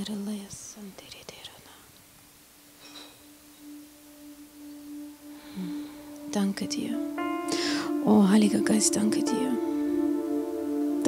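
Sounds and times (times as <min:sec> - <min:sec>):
faint whisper: 0:00.0 - 0:01.9
keyboard sustained pad note: 0:02.9 - 0:11.0.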